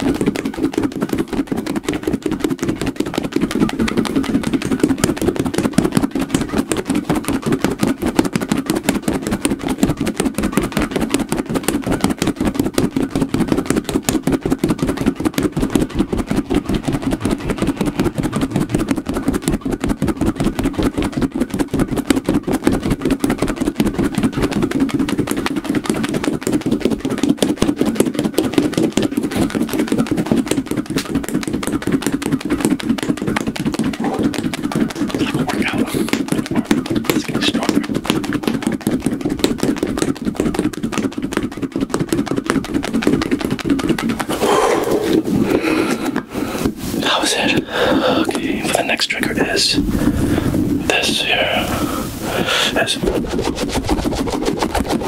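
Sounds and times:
rapid swishing of shaken ball: 0.0 - 55.0.

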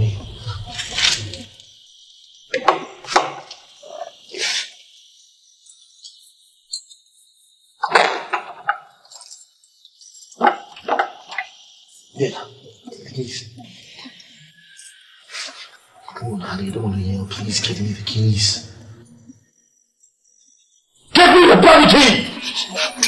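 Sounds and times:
steady hiss: 0.0 - 7.8, 9.2 - 19.3
broken bursts of voice: 21.1 - 23.0.

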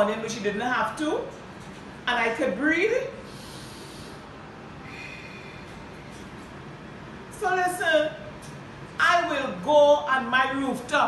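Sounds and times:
woman breathing through nose: 3.2 - 6.2.

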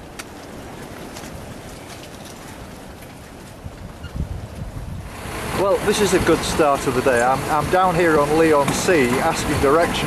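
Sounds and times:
wind rushing: 3.6 - 8.1.

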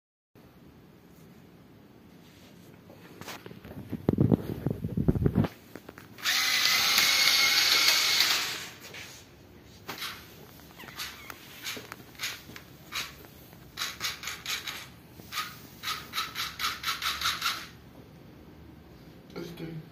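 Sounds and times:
small gear motors whining: 6.2 - 8.8.

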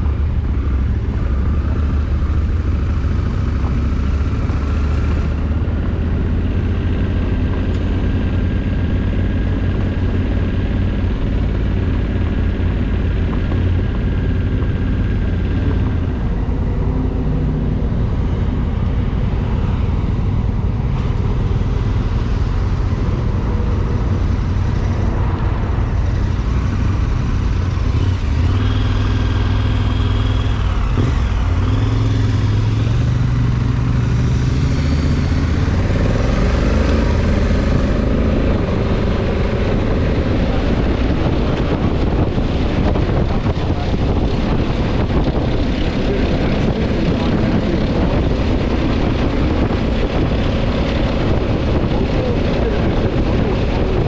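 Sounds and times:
motorcycle engine revving: 0.0 - 54.0
road noise: 0.0 - 54.0.

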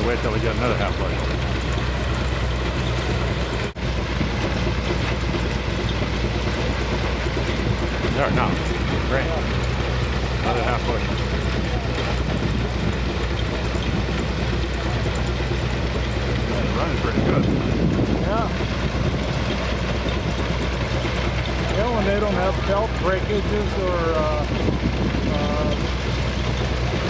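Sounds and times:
tractor driving threshing machine: 0.0 - 27.0.

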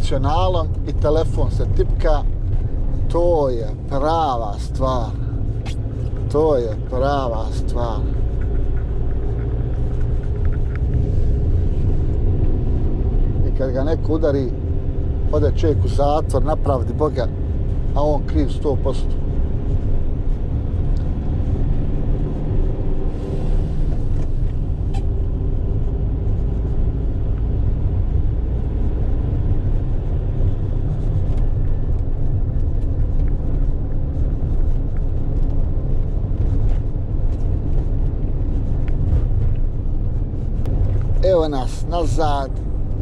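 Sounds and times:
van engine and road noise: 0.0 - 43.0.

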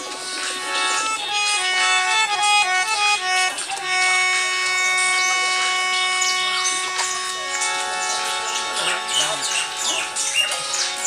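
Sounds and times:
instrument holding a steady note: 0.0 - 10.7
faint voices: 0.0 - 11.0.

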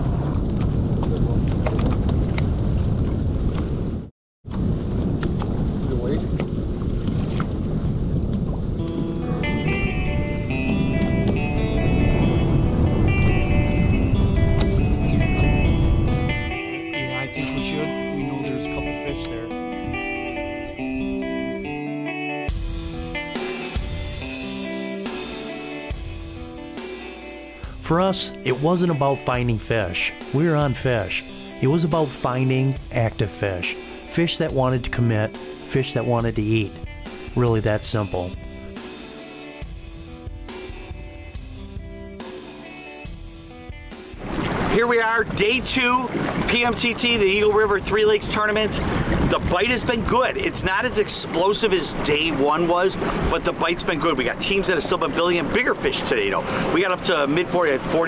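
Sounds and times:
wind rumble on microphone: 0.0 - 16.6, 44.1 - 56.7
background music: 8.8 - 48.8, 49.4 - 58.0.

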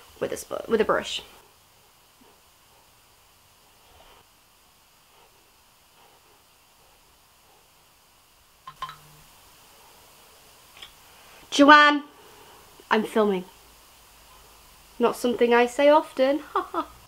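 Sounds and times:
makeup brush strokes on skin: 0.0 - 4.4, 5.0 - 7.9.

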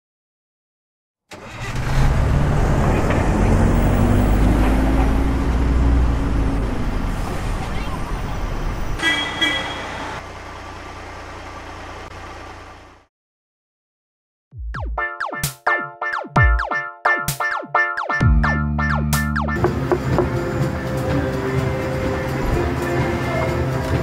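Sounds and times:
bus engine revving: 1.3 - 9.0, 19.2 - 24.0
bus horn toot: 9.0 - 10.2.

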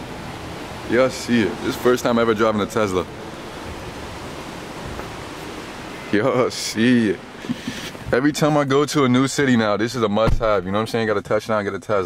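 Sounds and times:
rushing parking garage ambience: 0.0 - 11.0
soft low bump: 10.2 - 10.7.

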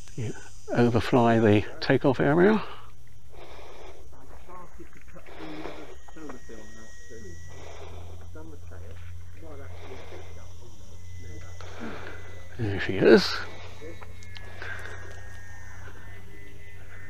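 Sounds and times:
low steady hum: 0.0 - 17.0
thin high whine: 0.0 - 17.0
faint voices talking: 0.2 - 17.0.

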